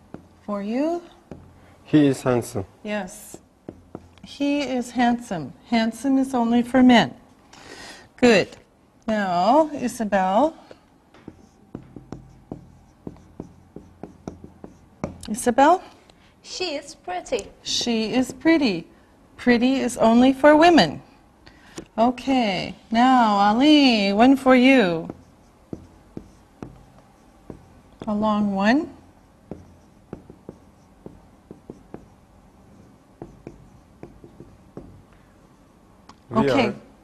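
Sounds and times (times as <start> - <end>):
marker writing on a whiteboard: 0.0 - 1.8, 2.9 - 5.1, 9.7 - 15.9, 17.6 - 18.8, 23.6 - 36.1
low steady hum: 0.0 - 37.0.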